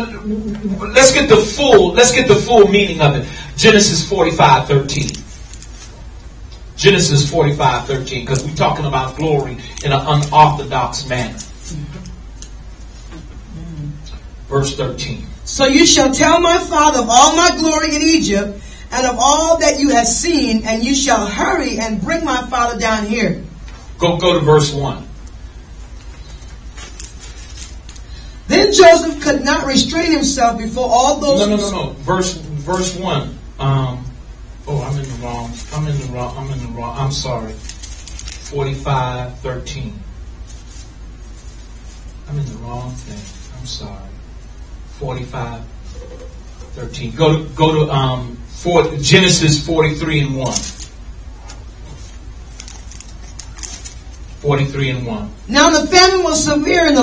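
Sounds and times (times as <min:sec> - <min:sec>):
faint hiss: 0:00.0 - 0:57.0
low electrical hum: 0:00.0 - 0:57.0.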